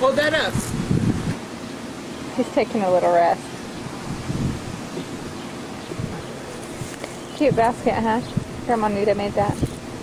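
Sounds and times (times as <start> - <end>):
wind rumble on microphone: 0.4 - 1.4, 3.7 - 10.0.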